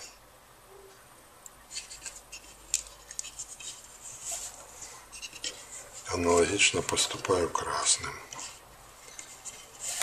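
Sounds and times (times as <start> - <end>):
cord rustling and rubbing: 1.6 - 7.5, 8.3 - 10.0
small clicks and scrapes: 1.7 - 7.3, 8.3 - 10.0.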